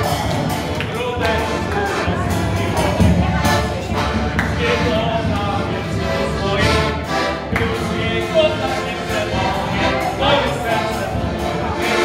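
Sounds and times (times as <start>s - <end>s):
accordion: 0.0s - 12.0s
group of voices singing: 0.0s - 12.0s.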